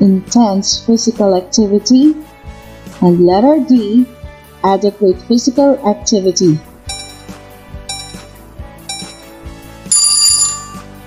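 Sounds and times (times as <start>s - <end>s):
soft plucked background music: 0.0s - 11.0s
bright bell ding: 6.9s - 9.3s, 9.9s - 11.0s.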